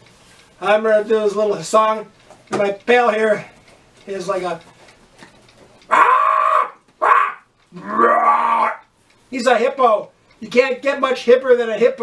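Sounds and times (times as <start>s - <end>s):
person making hippo calls: 5.9s - 8.9s.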